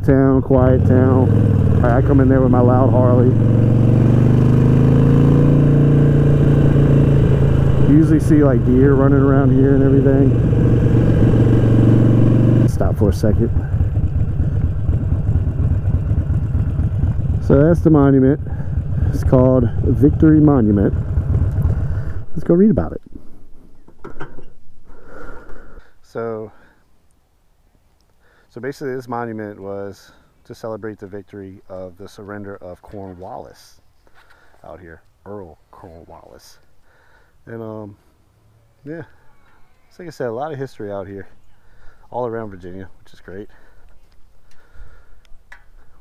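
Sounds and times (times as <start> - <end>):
motorcycle engine cruising: 0.0 - 23.0
person breathing: 18.4 - 19.1, 21.6 - 22.3, 24.8 - 26.9, 28.2 - 28.5, 34.0 - 34.6, 36.7 - 37.4, 41.5 - 42.1, 43.5 - 46.0.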